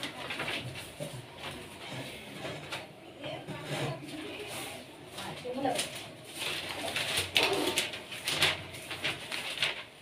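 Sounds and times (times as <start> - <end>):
quiet talk: 0.0 - 7.8.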